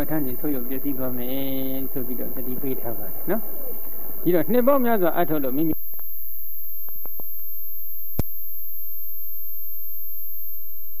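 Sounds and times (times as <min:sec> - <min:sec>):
low electrical hum: 0:00.0 - 0:06.2
high-pitched whine: 0:00.0 - 0:09.0.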